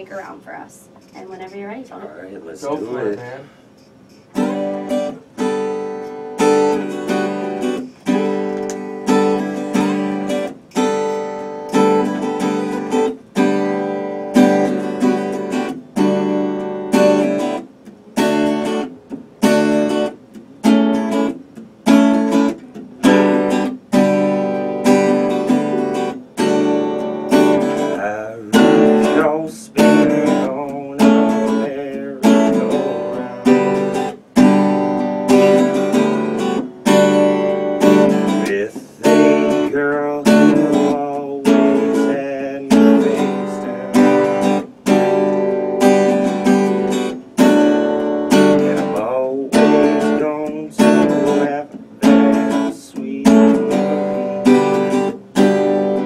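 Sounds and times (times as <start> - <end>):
acoustic guitar strumming: 2.6 - 56.0.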